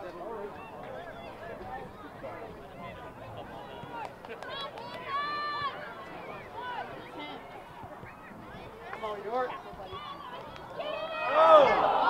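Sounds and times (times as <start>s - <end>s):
people shouting and calling: 0.3s - 12.0s.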